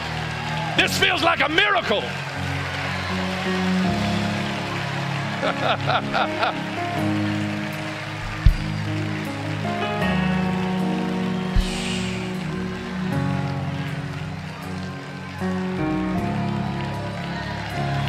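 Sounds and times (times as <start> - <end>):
crowd noise hum: 2.4 - 18.0
short low thumps: 8.2 - 8.9, 11.6 - 12.2.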